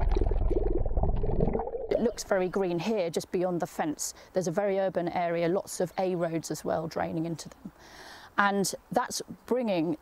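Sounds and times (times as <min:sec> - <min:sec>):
underwater brook bubbling: 0:00.0 - 0:02.6.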